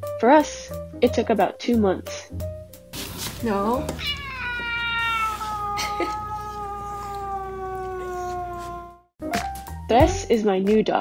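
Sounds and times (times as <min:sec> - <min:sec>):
cat yowling: 0:04.0 - 0:09.1.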